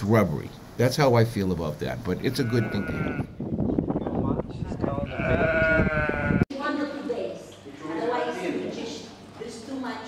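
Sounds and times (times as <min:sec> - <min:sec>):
sheep bleating: 0:02.3 - 0:03.4, 0:04.9 - 0:06.5.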